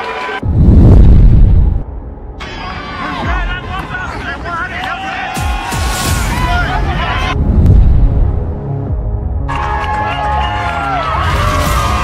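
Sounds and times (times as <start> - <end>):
deep rumbling boom: 0.4 - 2.4, 7.3 - 9.2
music: 2.0 - 12.0.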